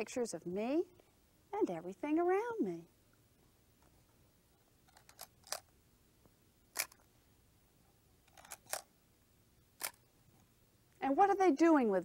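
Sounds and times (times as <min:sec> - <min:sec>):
camera shutter clicking: 0:08.3 - 0:08.9, 0:09.8 - 0:10.0.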